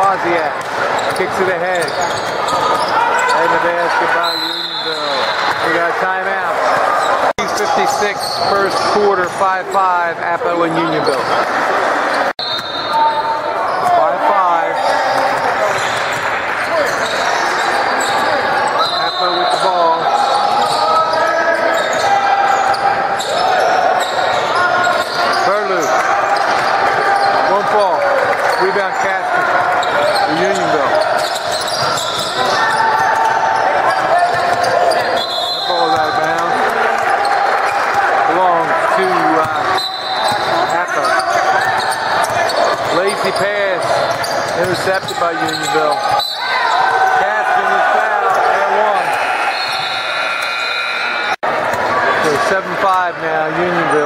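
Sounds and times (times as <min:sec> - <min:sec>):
players and spectators talking: 0:00.0 - 0:54.0.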